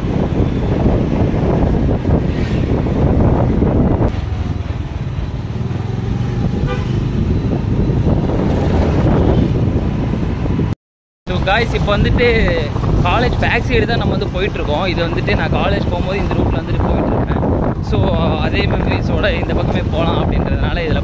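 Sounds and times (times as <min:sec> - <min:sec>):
traffic: 0:00.0 - 0:21.0
horn toot: 0:06.6 - 0:07.2.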